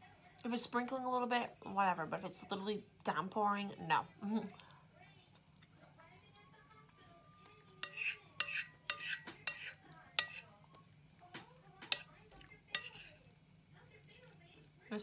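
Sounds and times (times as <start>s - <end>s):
metal spoon scraping a plate: 7.8s - 10.5s, 12.7s - 13.2s.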